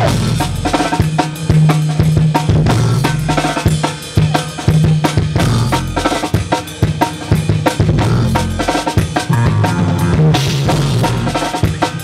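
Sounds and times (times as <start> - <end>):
low bass notes: 0.0 - 6.2, 7.4 - 11.6
drum kit hitting fast: 0.0 - 12.0
rock band playing: 0.0 - 12.0.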